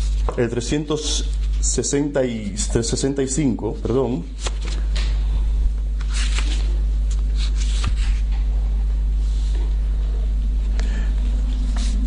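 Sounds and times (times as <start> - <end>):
steady low hum: 0.0 - 12.0
paper rustling: 3.8 - 5.1, 6.0 - 8.4.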